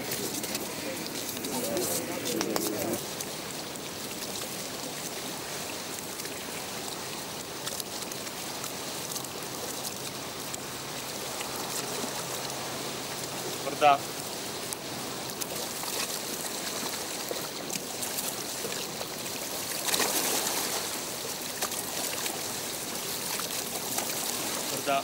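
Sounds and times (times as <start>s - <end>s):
voices murmuring: 0.0s - 3.0s
river water rushing: 0.0s - 25.0s.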